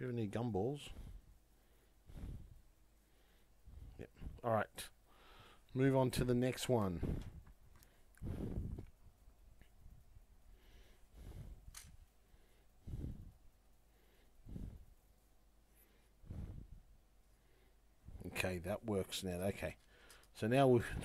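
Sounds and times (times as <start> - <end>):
soft puffs of breath: 0.8 - 4.4, 5.0 - 5.7, 6.8 - 9.0, 9.8 - 18.3, 19.8 - 21.0.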